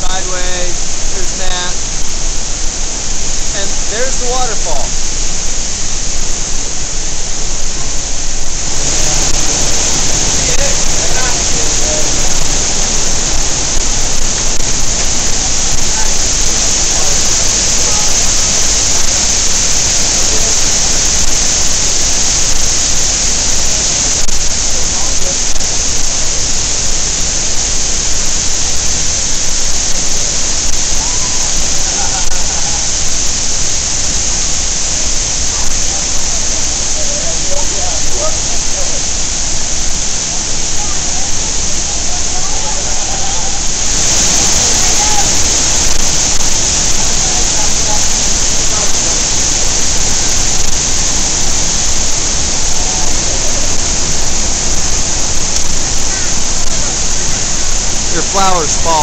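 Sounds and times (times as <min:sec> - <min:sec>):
waterfall rushing: 0:00.0 - 0:59.0.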